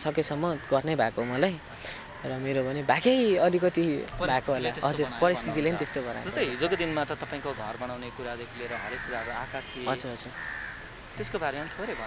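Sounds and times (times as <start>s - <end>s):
crow cawing: 0.4s - 2.3s, 4.2s - 12.0s.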